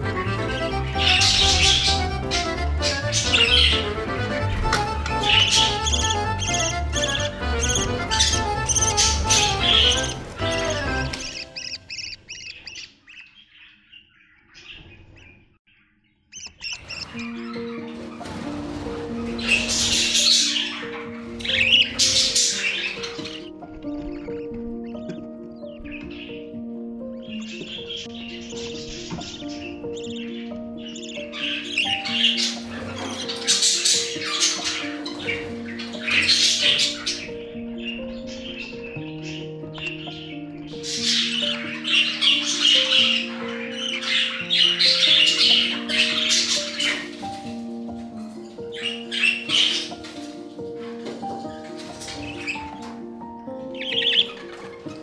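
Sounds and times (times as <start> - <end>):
background music: 0.0 - 12.6, 16.8 - 55.0
slow music with held notes: 0.0 - 12.7, 16.8 - 55.0
budgerigars chirping and squawking: 0.0 - 55.0.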